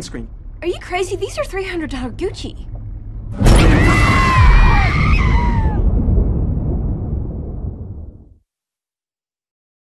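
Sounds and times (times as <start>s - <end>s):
deep low rumble: 0.0s - 8.4s.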